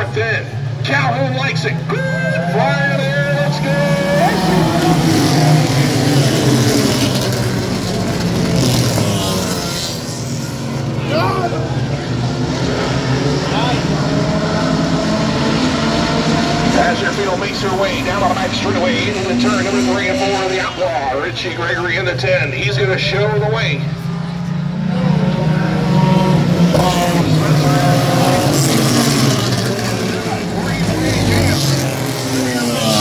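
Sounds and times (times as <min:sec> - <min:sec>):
stock car engines lapping: 0:00.0 - 0:33.0.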